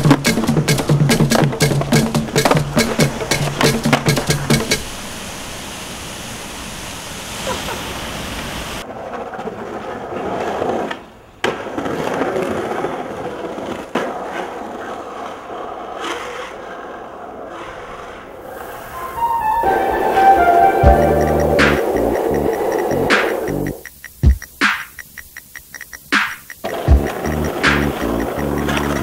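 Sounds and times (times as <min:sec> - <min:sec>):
music with drum beat: 0:00.0 - 0:04.8, 0:20.6 - 0:29.0
skateboard wheels rolling on asphalt: 0:07.4 - 0:23.8, 0:26.6 - 0:29.0
sharp clicks: 0:21.6 - 0:29.0.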